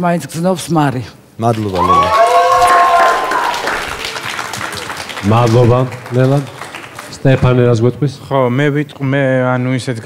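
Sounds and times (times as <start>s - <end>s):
audience applauding: 1.4s - 7.8s.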